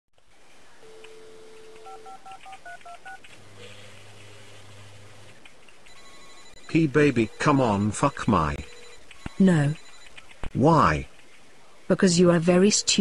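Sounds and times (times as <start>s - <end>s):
low steady hum: 0.2s - 13.0s
telephone dial tone: 0.8s - 4.3s, 5.9s - 10.2s
keypad beeps: 0.9s - 3.2s, 5.9s - 10.4s.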